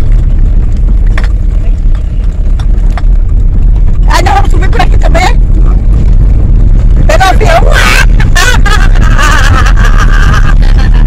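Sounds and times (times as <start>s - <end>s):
car driving rumble inside cabin: 0.0s - 11.0s.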